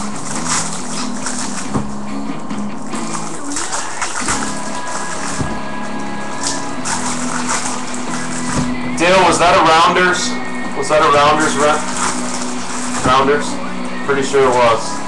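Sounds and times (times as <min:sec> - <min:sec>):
background music: 0:00.0 - 0:15.0
foil wrappers crinkling: 0:11.3 - 0:13.1.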